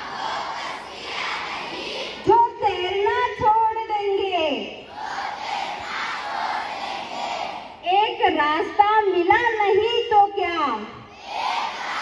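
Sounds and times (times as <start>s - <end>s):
children reciting in unison: 0.0s - 2.3s, 4.8s - 7.8s, 11.1s - 12.0s
woman speaking: 2.2s - 4.8s, 7.8s - 10.9s.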